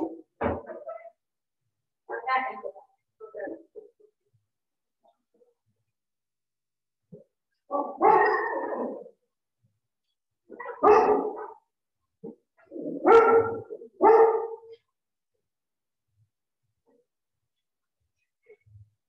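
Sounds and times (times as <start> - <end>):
dog barking: 7.7 - 8.9, 10.5 - 11.7, 12.8 - 14.8.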